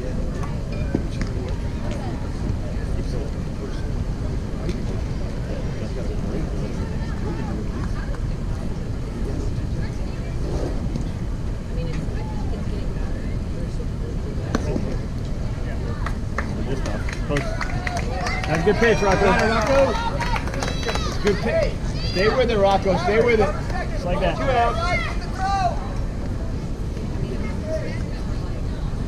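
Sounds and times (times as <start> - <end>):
steady low rumble: 0.0 - 18.3
faint voices: 0.0 - 29.0.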